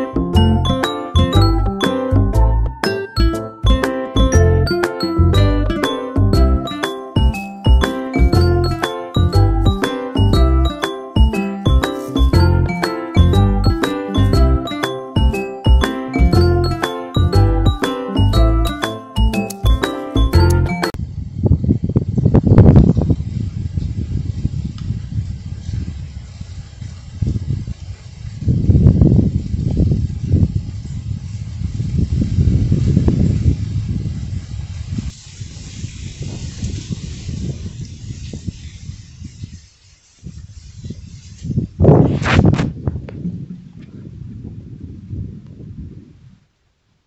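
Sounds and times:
wind buffeting microphone: 21.0s - 46.6s.

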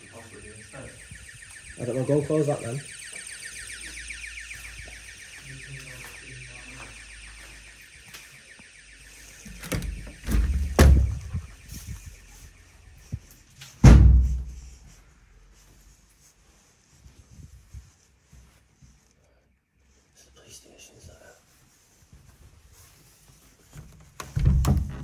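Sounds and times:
pulsing electronic alarm: 0.0s - 14.9s
heavy door thuds: 9.5s - 11.5s, 13.8s - 14.6s, 24.4s - 25.0s.

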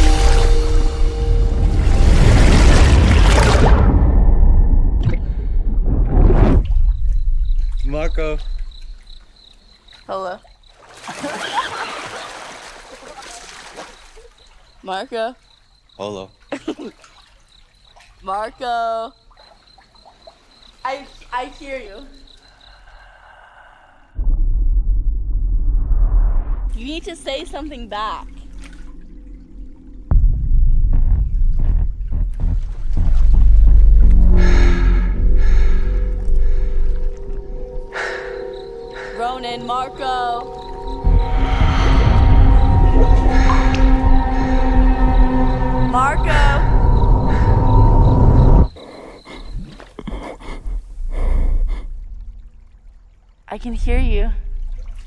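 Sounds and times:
deep rumbling drone: 0.0s - 9.1s, 24.1s - 48.8s, 50.6s - 55.0s
deep muffled underwater rumble: 24.2s - 26.8s, 28.3s - 38.1s
airy swells: 34.4s - 48.7s.

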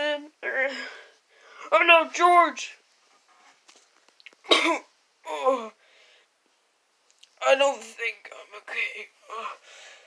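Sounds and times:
person coughing: 4.5s - 4.9s
faint small clicks: 7.0s - 7.4s.

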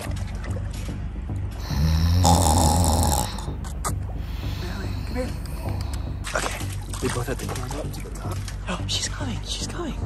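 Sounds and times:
man straining raspy grunt: 1.6s - 3.6s.

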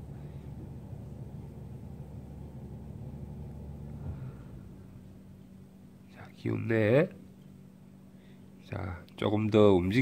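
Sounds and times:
faint hum: 0.0s - 10.0s
low background rumble: 0.0s - 10.0s.

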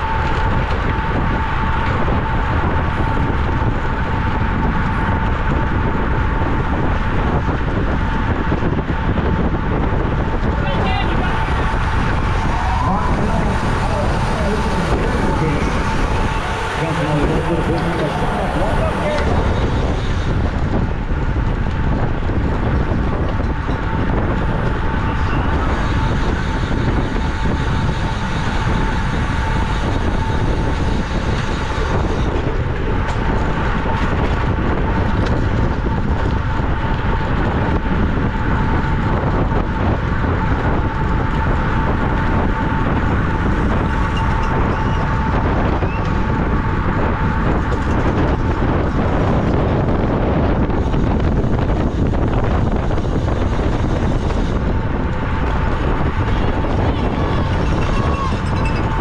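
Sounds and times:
tyre and road noise: 0.0s - 59.0s
wind buffeting microphone: 0.0s - 59.0s.

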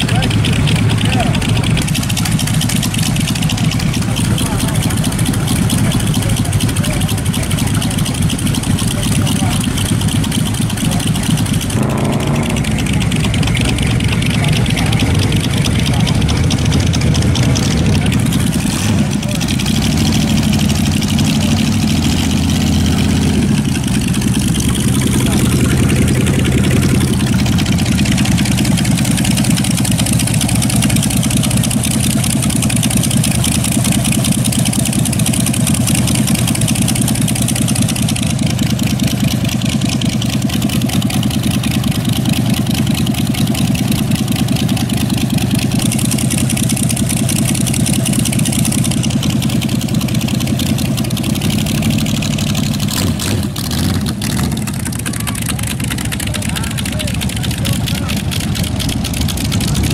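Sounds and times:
car engines at low speed: 0.0s - 59.9s
crowd voices: 0.0s - 59.9s.

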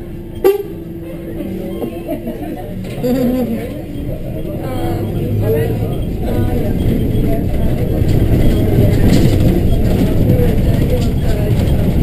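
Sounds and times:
bus engine and road rumble: 0.0s - 12.0s
faint voices: 0.0s - 12.0s.

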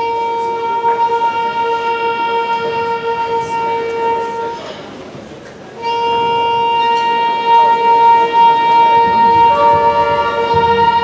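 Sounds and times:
wind instrument long note: 0.0s - 11.0s.

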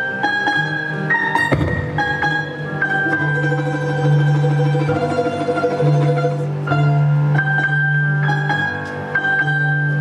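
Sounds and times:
balalaika melody: 0.0s - 10.0s
piano accompaniment: 0.0s - 10.0s.

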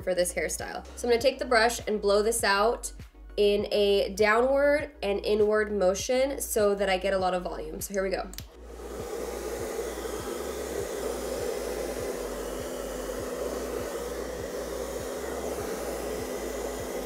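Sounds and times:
hair dryer running: 8.4s - 17.0s.

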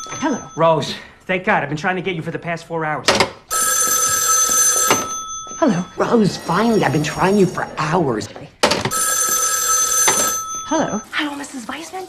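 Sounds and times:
rotary telephone bell ringing: 0.0s - 1.0s, 3.5s - 7.7s, 8.9s - 11.2s.

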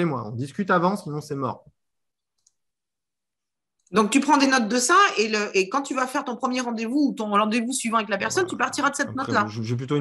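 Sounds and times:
person speaking: 7.9s - 10.0s.

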